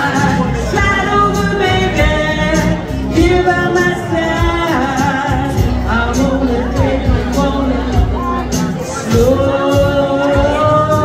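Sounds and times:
rock backing track: 0.0s - 11.0s
woman singing into microphone: 0.0s - 11.0s.

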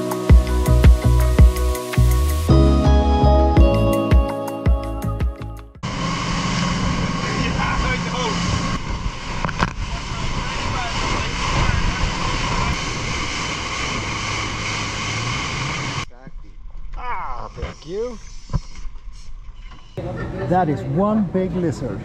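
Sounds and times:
music: 0.0s - 5.8s
motorboat engine drone: 5.8s - 16.0s
rush of spray and wind: 5.8s - 16.0s.

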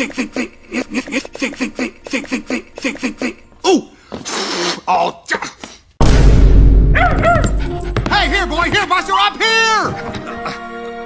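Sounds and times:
film score music: 6.0s - 11.0s
small dog barking: 7.0s - 7.6s.

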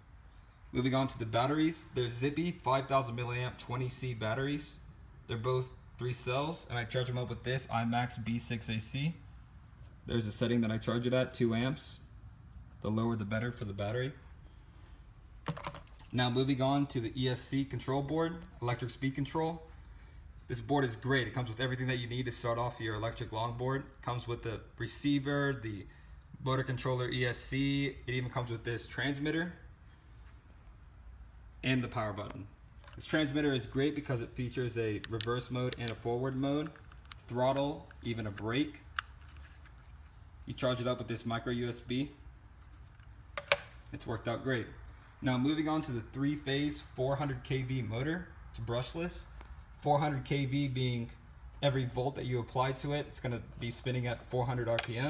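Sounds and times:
sharp clicks: 34.9s - 39.4s, 43.3s - 43.8s
plastic tackle box clicks: 43.4s - 43.7s.

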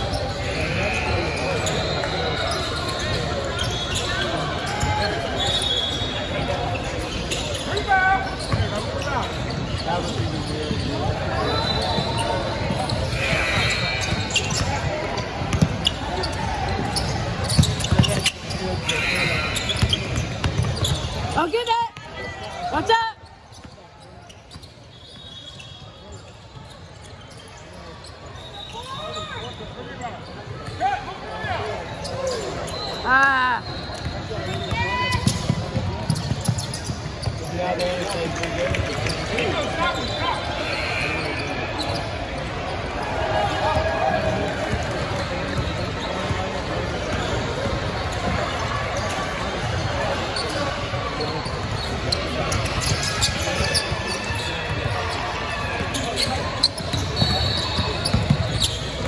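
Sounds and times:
sneakers squeaking: 0.0s - 59.0s
basketball bouncing: 14.8s - 15.8s, 58.1s - 58.5s.

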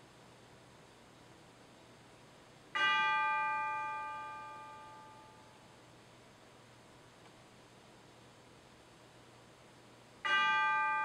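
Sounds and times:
bell-like chime ringing: 2.8s - 5.4s, 10.3s - 11.0s.

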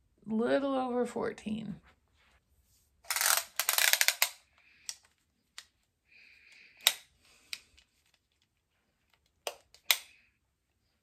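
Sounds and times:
tape measure clicking and rattling: 3.0s - 4.4s
tape measure rasp: 3.0s - 4.4s.

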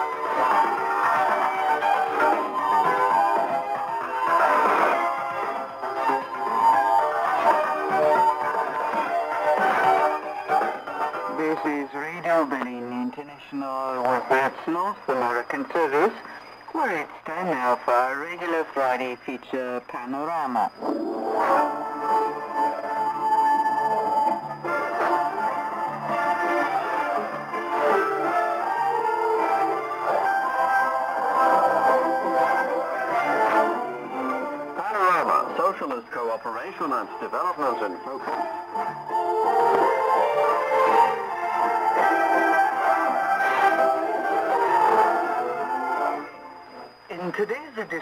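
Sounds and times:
voice over shortwave radio: 34.8s - 38.4s.

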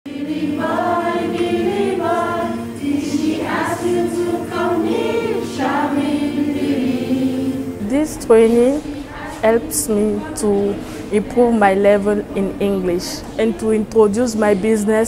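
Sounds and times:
women singing together: 0.1s - 15.0s.

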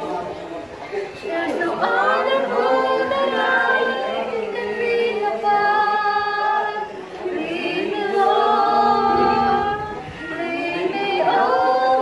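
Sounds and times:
group singing in chorus: 0.0s - 0.4s, 1.2s - 12.0s.

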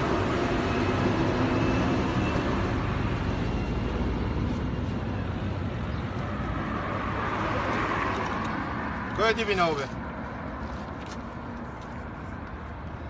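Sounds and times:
road traffic rumble: 0.0s - 13.0s.

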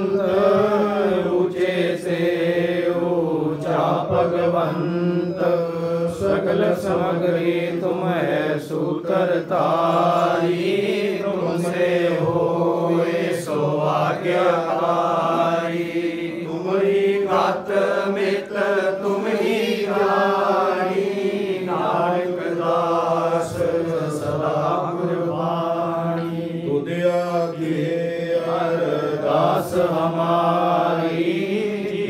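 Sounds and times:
congregation chanting a prayer: 0.0s - 32.0s.

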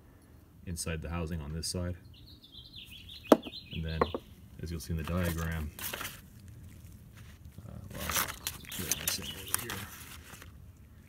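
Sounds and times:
metal knock on wooden bench: 3.3s - 4.2s.

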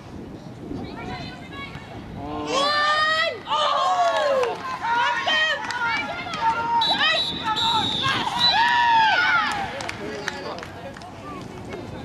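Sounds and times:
women shouting calls: 4.4s - 9.5s.

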